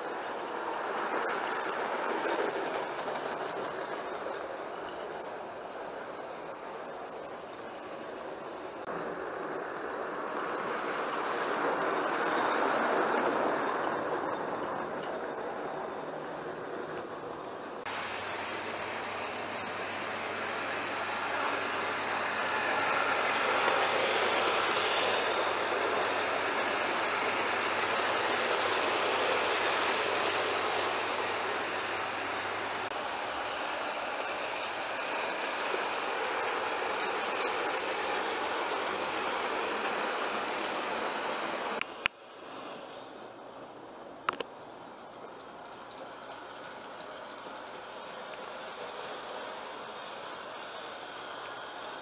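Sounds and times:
model train motor whirring: 0:00.0 - 0:08.9, 0:17.7 - 0:41.8, 0:45.4 - 0:52.0
wheels rattling on rails: 0:00.0 - 0:52.0.

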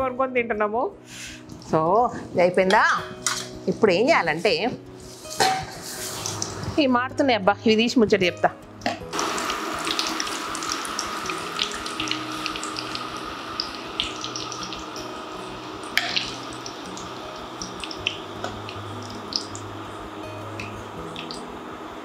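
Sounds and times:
food deep-frying in hot oil: 0:04.5 - 0:06.9, 0:08.9 - 0:22.0
oil popping: 0:05.4 - 0:06.8, 0:08.8 - 0:21.5.

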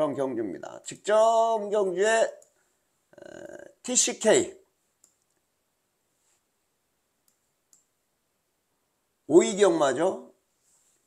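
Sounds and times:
faint computer mouse clicks: 0:05.0 - 0:05.4, 0:07.2 - 0:07.9.

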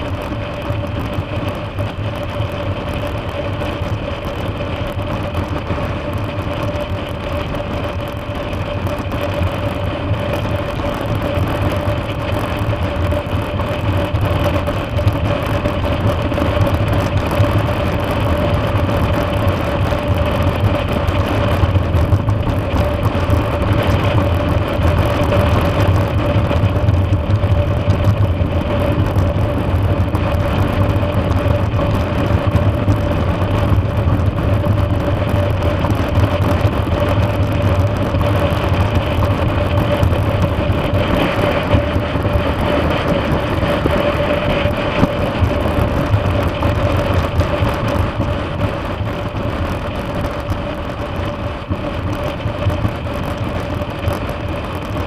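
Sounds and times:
motorcycle engine cruising: 0:00.0 - 0:55.0.

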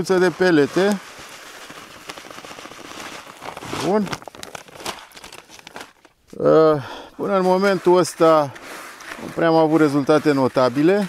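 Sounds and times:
fishing pellets pouring into bucket: 0:00.0 - 0:06.0.

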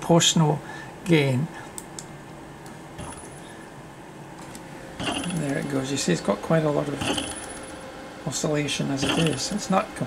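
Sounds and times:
high thin motor whine: 0:04.8 - 0:10.0.

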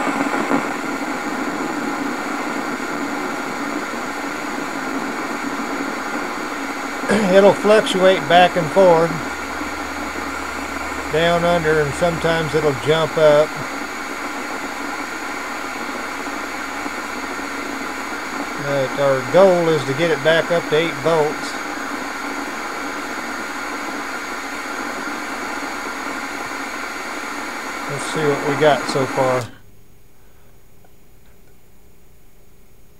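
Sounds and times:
tesla coil hissing: 0:00.0 - 0:29.6
low hum: 0:00.0 - 0:30.2.

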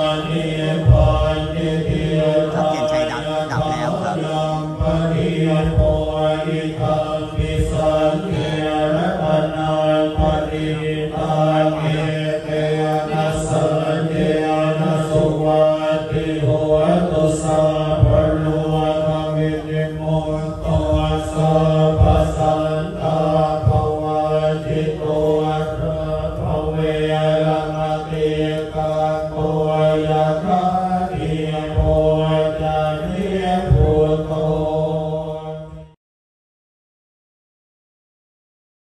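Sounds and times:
monks chanting in unison: 0:00.0 - 0:36.0.

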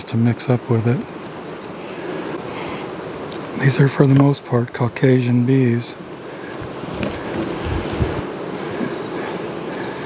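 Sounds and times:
wind rushing on microphone: 0:06.6 - 0:08.3.

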